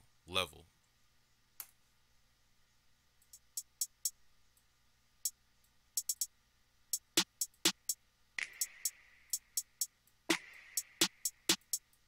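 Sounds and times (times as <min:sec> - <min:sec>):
high hi-hat ticks: 0:03.2 - 0:12.0.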